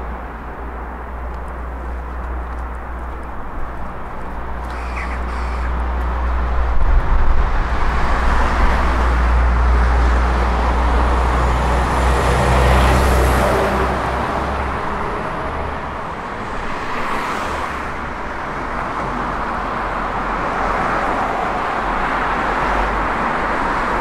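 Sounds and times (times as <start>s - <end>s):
traffic noise: 0.0s - 24.0s
diesel lorry driving past: 2.8s - 20.4s.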